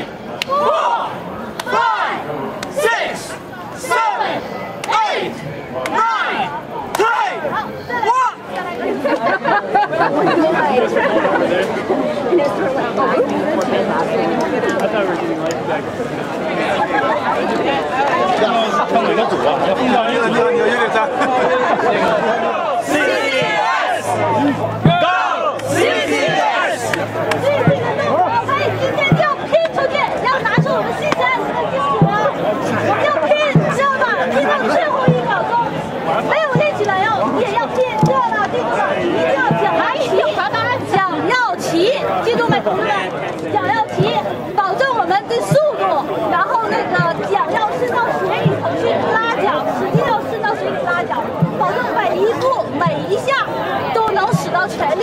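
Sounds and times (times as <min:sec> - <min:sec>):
people talking at once: 0:00.0 - 0:55.0
group shouting a cheer: 0:00.4 - 0:08.4, 0:22.4 - 0:24.2, 0:24.8 - 0:27.0.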